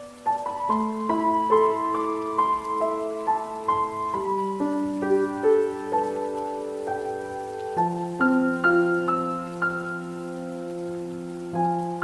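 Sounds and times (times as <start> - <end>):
rain pattering: 0.0 - 12.0
slow solo piano: 0.0 - 12.0.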